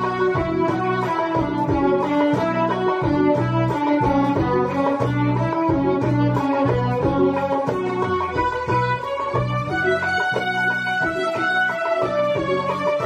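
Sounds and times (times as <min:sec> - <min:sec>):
repeating bass line: 0:00.0 - 0:13.0.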